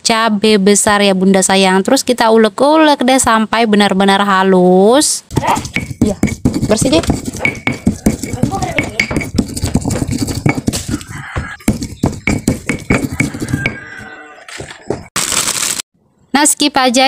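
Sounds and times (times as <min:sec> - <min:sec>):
stone pestle grinding in mortar: 0:05.3 - 0:14.1.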